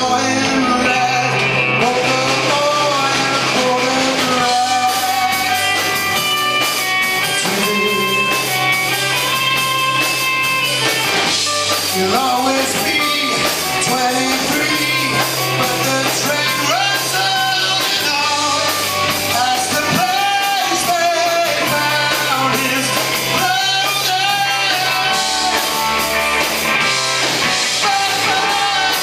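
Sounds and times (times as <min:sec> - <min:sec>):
person singing: 0:00.0 - 0:10.9, 0:11.6 - 0:26.5, 0:27.3 - 0:29.0
live rock band playing: 0:00.0 - 0:29.0.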